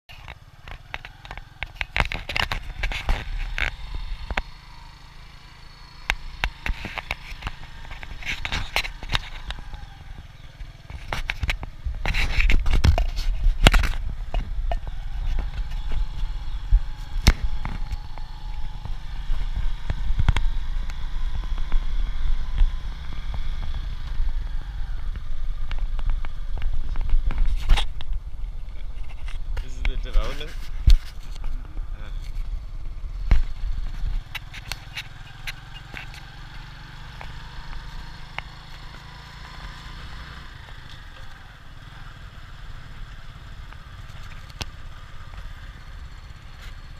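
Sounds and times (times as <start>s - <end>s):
bike knocking and rattling: 0.1s - 46.9s
motorcycle engine rumble: 0.1s - 46.9s
wind and road noise: 0.1s - 46.9s.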